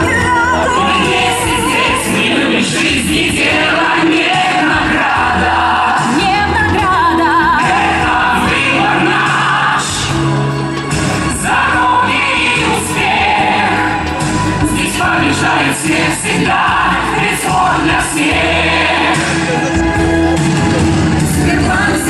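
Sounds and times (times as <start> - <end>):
group singing a pop song: 0.0 - 19.7, 20.9 - 22.0
musical accompaniment: 0.0 - 22.0.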